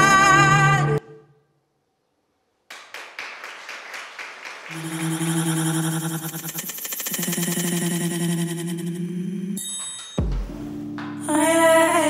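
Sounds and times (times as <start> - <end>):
audience clapping: 2.7 - 7.1.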